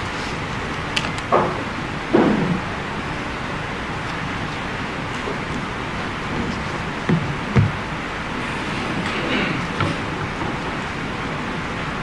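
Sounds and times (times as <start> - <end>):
room noise hiss: 0.0 - 12.0
low knocks: 6.5 - 8.1.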